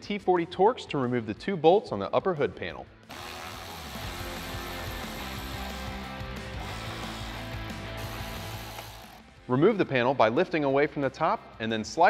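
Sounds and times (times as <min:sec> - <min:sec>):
background music: 0:00.0 - 0:12.0
power driver running: 0:03.1 - 0:09.2.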